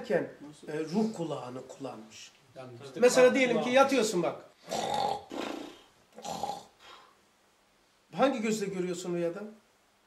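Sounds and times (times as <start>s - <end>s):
man imitating snoring: 4.6s - 6.8s.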